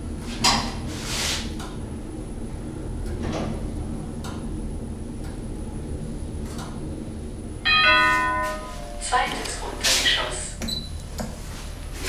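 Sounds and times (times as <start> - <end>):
elevator car humming: 0.0 - 12.0
elevator arrival chime: 7.6 - 11.0.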